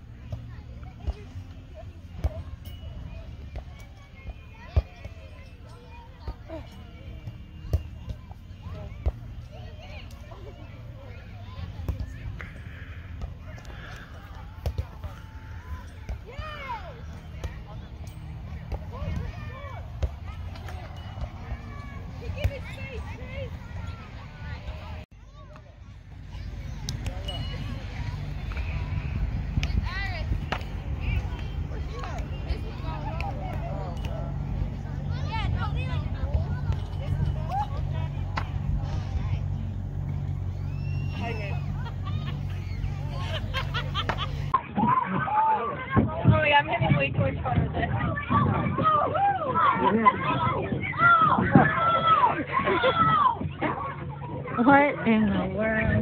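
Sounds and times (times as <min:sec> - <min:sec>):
low engine rumble: 0:00.0 - 0:44.6
faint children's voices: 0:00.0 - 0:56.0.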